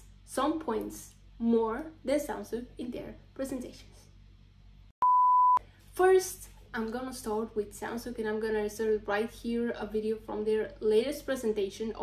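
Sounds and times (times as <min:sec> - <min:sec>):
test tone beep: 0:05.0 - 0:05.6.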